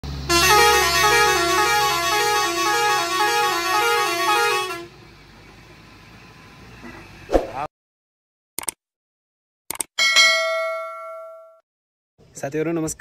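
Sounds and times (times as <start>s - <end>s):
truck engine running: 0.0s - 7.3s
truck horn two-note tune: 0.1s - 5.0s.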